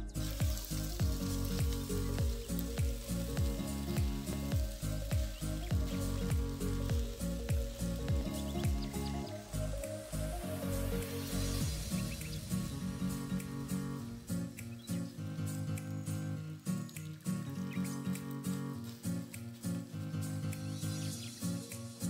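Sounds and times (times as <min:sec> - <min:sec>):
spatula stir-frying in wok: 0:00.0 - 0:12.5
rice sizzling in a hot wok: 0:00.0 - 0:13.4
background music with deep bass beat: 0:00.0 - 0:22.0.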